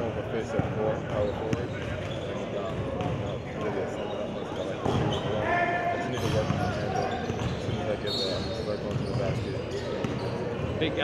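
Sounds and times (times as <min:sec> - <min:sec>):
voices on basketball court: 0:00.0 - 0:11.0
sneakers squeaking on hardwood: 0:01.1 - 0:05.4, 0:06.2 - 0:11.0.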